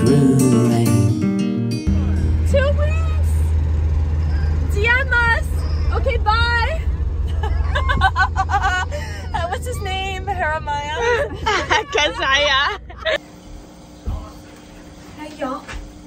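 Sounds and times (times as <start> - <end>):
car rumble from inside cabin: 1.8 - 16.0
voices calling out: 1.9 - 13.2.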